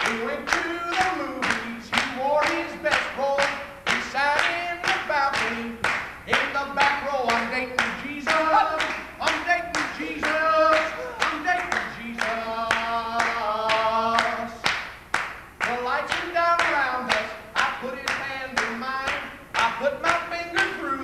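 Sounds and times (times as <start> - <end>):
rhythmic handclapping: 0.0 - 21.0
voices singing: 0.0 - 21.0.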